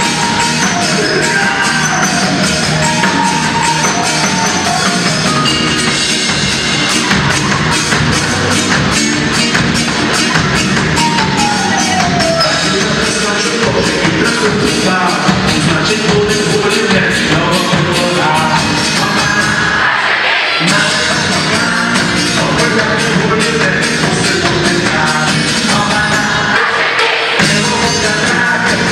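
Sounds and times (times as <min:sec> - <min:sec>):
drums steady beat: 0:00.0 - 0:19.8, 0:20.6 - 0:28.9
pop-rock band playing: 0:00.0 - 0:28.9.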